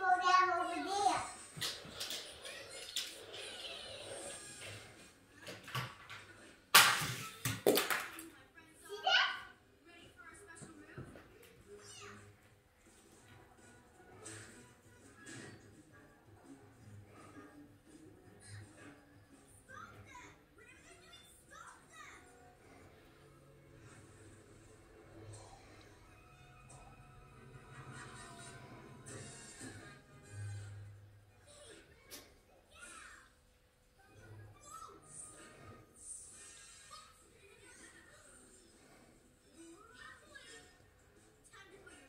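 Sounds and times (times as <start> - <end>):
faint child-like speech: 8.6 - 15.6, 18.3 - 22.9, 31.3 - 42.0.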